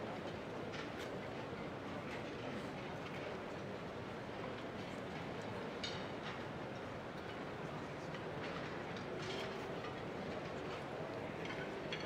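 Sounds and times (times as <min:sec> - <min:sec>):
hubbub of crowd: 0:00.0 - 0:12.0.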